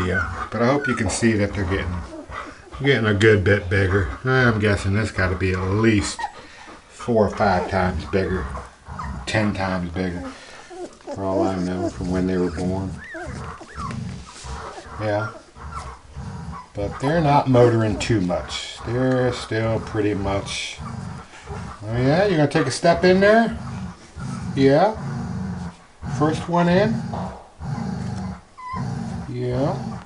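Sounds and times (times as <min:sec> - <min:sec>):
dog growling: 0:00.0 - 0:30.0
puppies whimpering: 0:00.0 - 0:30.0.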